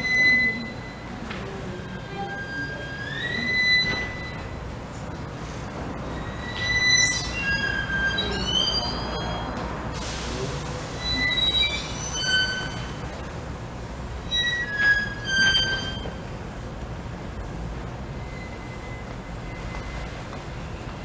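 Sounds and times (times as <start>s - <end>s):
short hiss: 10.0s - 10.7s.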